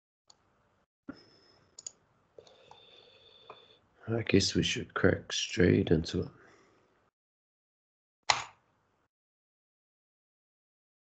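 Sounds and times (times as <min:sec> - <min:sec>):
computer clicks: 0:01.8 - 0:02.8.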